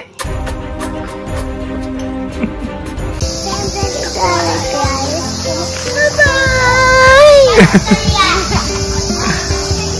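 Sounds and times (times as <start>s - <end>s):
background music: 0.0s - 9.9s
girl laughing: 2.3s - 2.9s, 7.3s - 8.4s, 9.1s - 9.6s
girl calling bye-bye: 5.9s - 8.1s.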